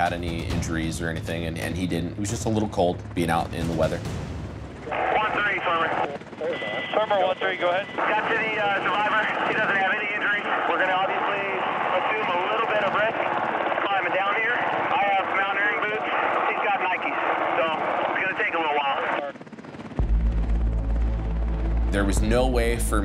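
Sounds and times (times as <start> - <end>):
helicopter running: 0.0 - 23.0
radio voices talking: 4.9 - 19.4.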